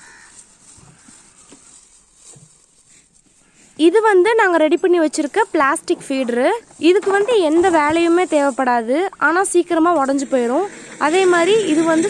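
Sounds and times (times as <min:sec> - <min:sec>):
cow chewing fodder: 0:00.0 - 0:03.8.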